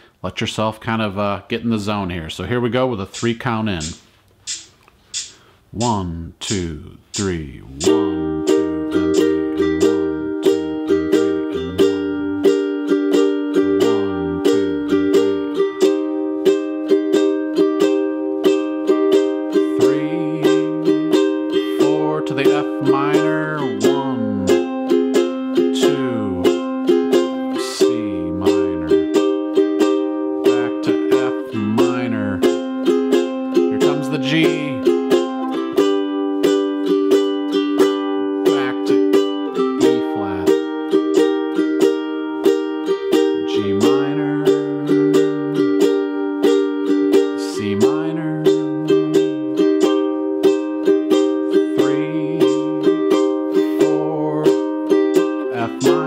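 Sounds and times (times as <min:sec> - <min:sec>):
ukulele strummed: 0:01.8 - 0:56.0
metronome ticking: 0:03.1 - 0:56.0.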